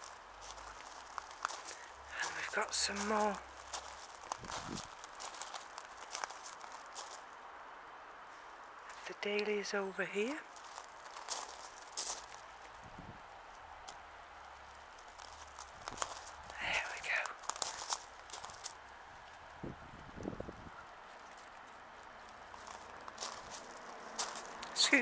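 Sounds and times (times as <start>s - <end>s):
footsteps crunching on gravel: 0.0s - 7.3s, 10.4s - 25.0s
distant road traffic rumble: 0.0s - 25.0s.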